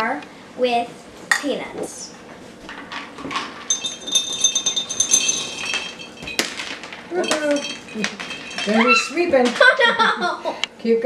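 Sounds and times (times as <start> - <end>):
peanuts clinking into glass jar: 3.7 - 9.4.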